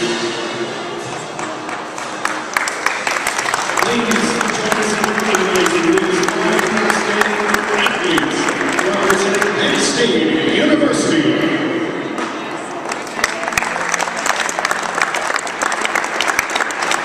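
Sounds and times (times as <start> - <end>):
crowd applauding: 1.0 - 10.0, 12.8 - 17.0.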